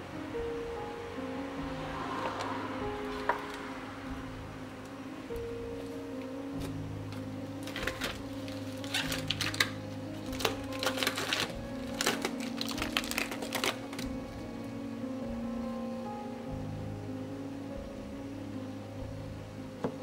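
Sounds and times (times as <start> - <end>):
acoustic guitar music: 0.0 - 20.0.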